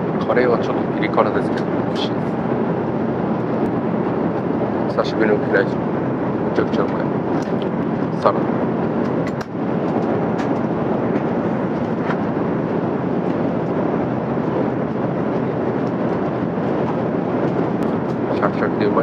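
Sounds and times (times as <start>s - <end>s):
airliner cabin noise: 0.0s - 19.0s.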